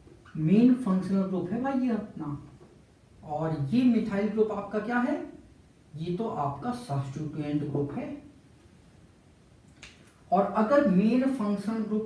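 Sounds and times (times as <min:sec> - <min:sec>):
man speaking: 0:00.3 - 0:02.6, 0:03.2 - 0:08.4, 0:10.3 - 0:12.0.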